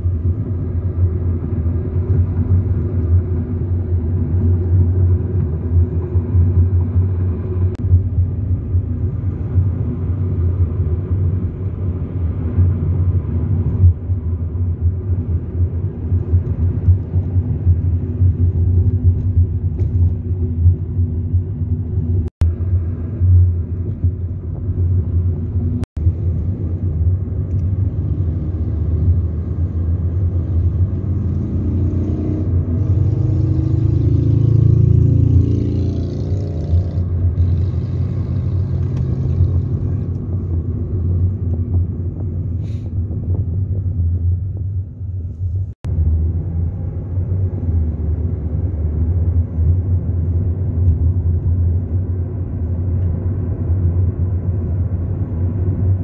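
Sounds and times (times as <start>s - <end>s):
car road and engine rumble: 0.0s - 56.0s.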